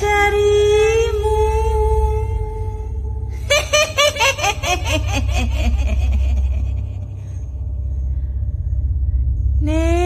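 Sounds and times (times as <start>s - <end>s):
deep rumbling drone: 0.0s - 10.0s
cackling laugh: 3.5s - 7.1s.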